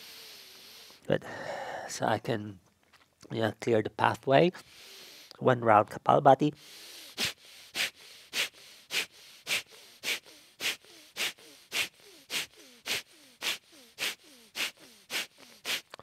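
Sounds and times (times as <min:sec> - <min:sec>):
forceful nasal exhalations: 0:00.0 - 0:01.9, 0:04.6 - 0:05.4, 0:06.6 - 0:16.0
quick inhalations: 0:00.0 - 0:01.9, 0:04.6 - 0:05.4, 0:06.6 - 0:16.0.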